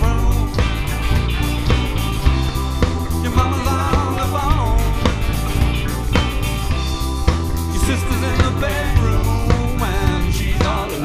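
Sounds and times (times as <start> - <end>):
person singing: 0.0 - 1.3, 2.9 - 5.7, 7.7 - 11.0
bass drum and snare hits: 0.0 - 11.0
live band playing: 0.0 - 11.0.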